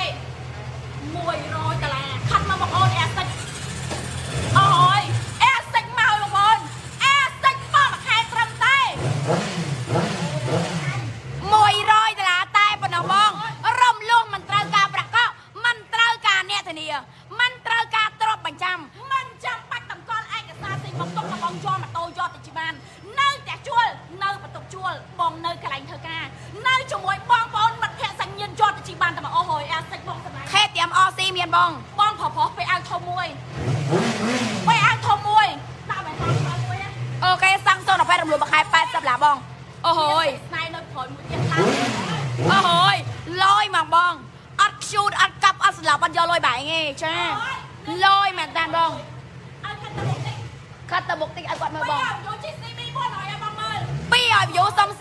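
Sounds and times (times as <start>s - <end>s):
woman shouting: 0.0s - 0.3s, 1.0s - 3.4s, 4.4s - 33.5s, 34.3s - 55.0s
motorcycle engine idling: 0.0s - 55.0s.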